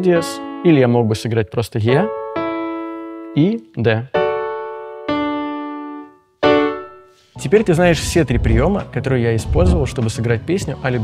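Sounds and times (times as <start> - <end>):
piano chords ringing: 0.0 - 10.1.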